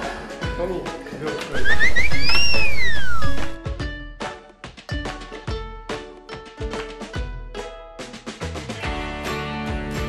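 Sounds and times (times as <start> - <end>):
background music: 0.0 - 10.0
comic squeals and whistle glide: 1.6 - 3.6.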